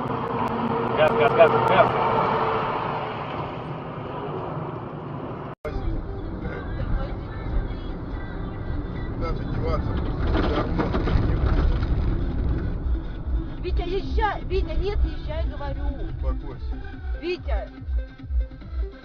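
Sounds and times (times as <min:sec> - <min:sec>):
car engine and tyre noise: 0:00.0 - 0:18.9
deep road rumble: 0:00.0 - 0:19.0.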